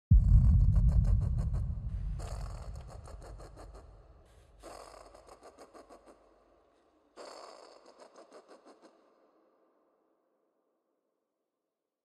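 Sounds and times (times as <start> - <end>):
deep rumble: 0.1 - 4.2.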